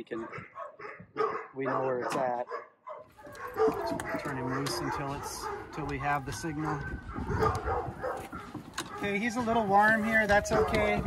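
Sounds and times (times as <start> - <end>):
collar buckle click: 3.2 - 4.9, 7.4 - 9.0.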